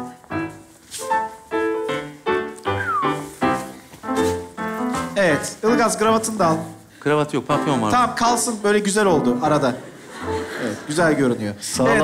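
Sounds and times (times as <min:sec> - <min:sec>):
piano chords and notes: 0:00.0 - 0:12.0.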